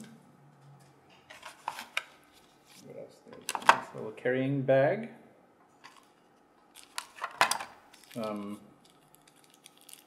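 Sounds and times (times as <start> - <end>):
packaging clicks and rustles: 5.9 - 10.0.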